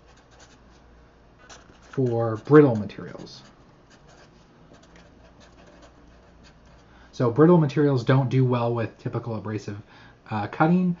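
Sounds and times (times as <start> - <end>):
marker scratching on paper: 0.0 - 6.9.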